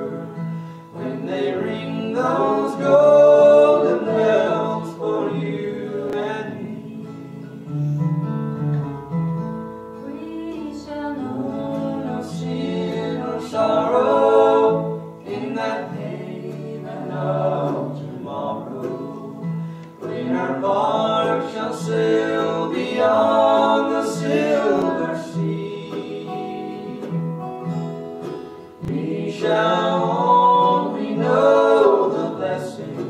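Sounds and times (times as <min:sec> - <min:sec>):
instrumental accompaniment: 0:00.0 - 0:33.0
voices singing slow song: 0:00.0 - 0:33.0.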